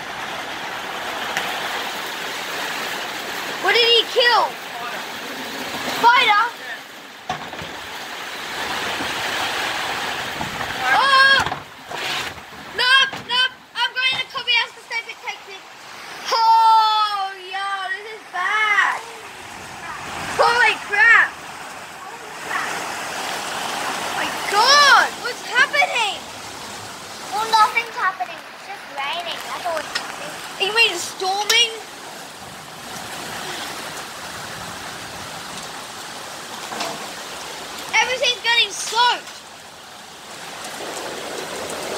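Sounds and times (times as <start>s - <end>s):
heavy rain pouring: 0.0s - 41.9s.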